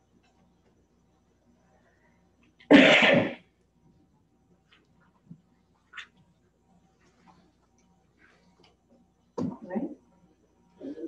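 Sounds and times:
person coughing: 0:02.7 - 0:03.4.

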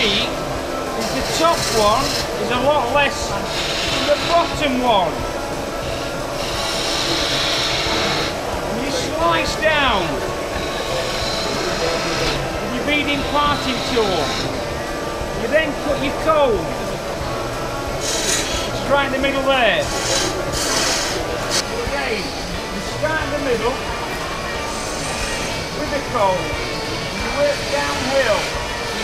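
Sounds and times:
turning tool cutting wood: 0:00.0 - 0:14.8, 0:18.0 - 0:29.0
wood lathe humming: 0:00.0 - 0:29.0.

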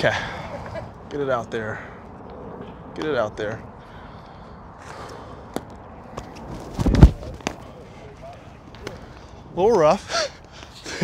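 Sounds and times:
loud low thud with rustling: 0:06.5 - 0:07.6.

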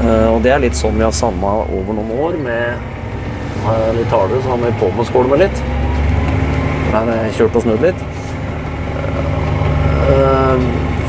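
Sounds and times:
tractor engine drone: 0:00.0 - 0:11.0.

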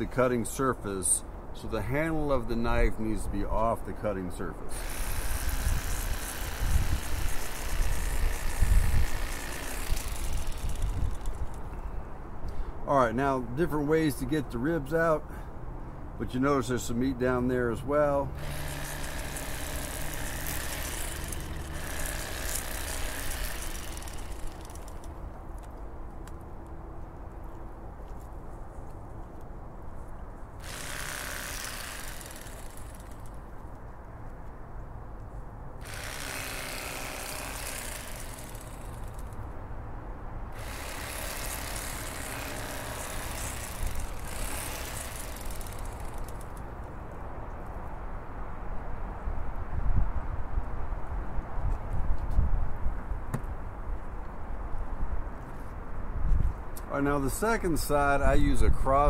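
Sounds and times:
electric fillet knife humming: 0:30.6 - 0:33.2.

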